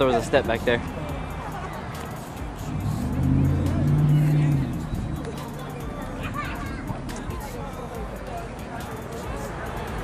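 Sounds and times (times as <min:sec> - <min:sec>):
vehicle engine drone passing: 0:02.1 - 0:08.0.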